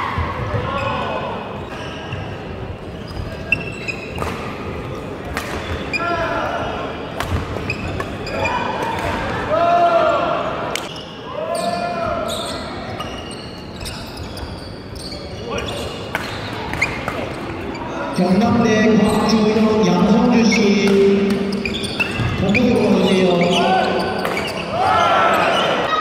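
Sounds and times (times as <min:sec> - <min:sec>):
shoes squeaking on floor: 0:00.4 - 0:04.3, 0:07.6 - 0:08.7, 0:10.8 - 0:26.0
rackets hitting shuttlecock: 0:05.2 - 0:05.8, 0:07.2 - 0:08.2, 0:10.7 - 0:10.9, 0:20.8 - 0:22.3, 0:24.1 - 0:24.7
voices: 0:15.4 - 0:26.0.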